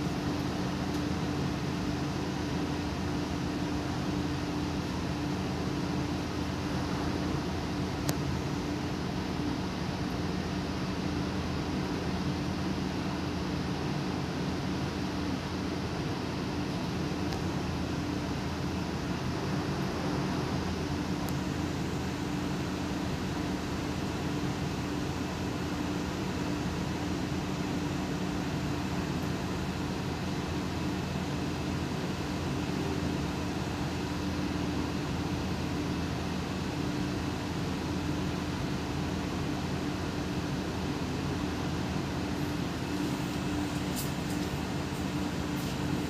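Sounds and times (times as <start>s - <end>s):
machinery hum: 0.0s - 46.0s.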